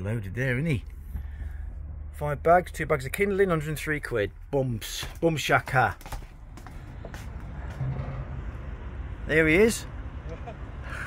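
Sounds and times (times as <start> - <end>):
steady low rumble: 6.3 - 11.0.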